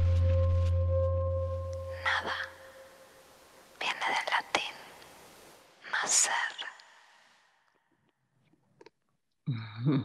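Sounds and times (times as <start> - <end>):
breathy whispering voice: 1.9 - 2.9, 3.8 - 5.0, 5.8 - 7.0.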